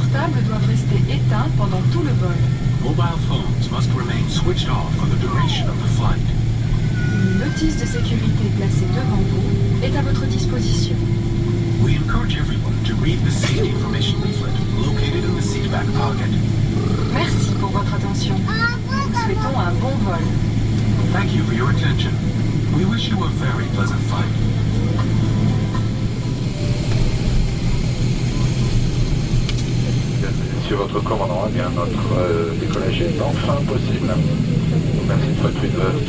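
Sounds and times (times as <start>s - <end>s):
airplane cabin engine drone: 0.0s - 36.0s
faint voice: 13.1s - 17.7s, 18.4s - 19.7s.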